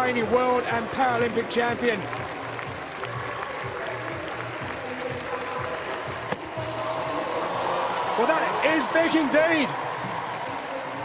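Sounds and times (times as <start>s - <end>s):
stadium crowd noise: 0.0s - 11.0s
crowd cheering: 0.8s - 11.0s.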